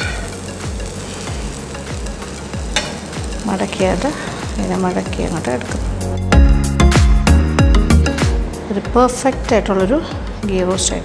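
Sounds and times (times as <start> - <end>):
dosa sizzling on a griddle: 0.0 - 6.4
soft background music beat: 0.0 - 11.0.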